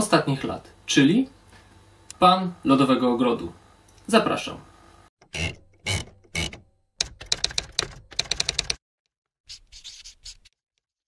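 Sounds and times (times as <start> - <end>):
typewriter keystrokes clacking: 5.3 - 8.8.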